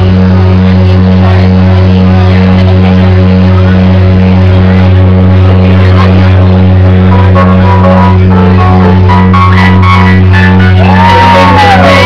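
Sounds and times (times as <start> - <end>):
low synthesizer bass drone: 0.0 - 12.0.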